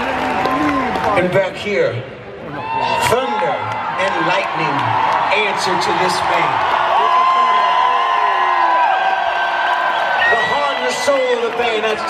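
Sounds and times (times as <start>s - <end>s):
concert crowd cheering and screaming: 0.0s - 1.2s, 2.4s - 12.0s.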